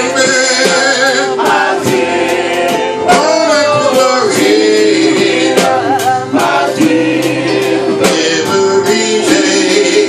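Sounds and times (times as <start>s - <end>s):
man singing through microphone: 0.0s - 2.0s, 2.7s - 10.0s
voices singing in harmony: 0.0s - 10.0s.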